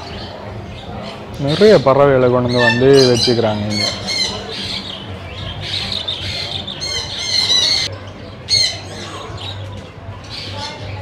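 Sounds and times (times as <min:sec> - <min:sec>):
parrots squawking and chattering: 0:00.0 - 0:10.9.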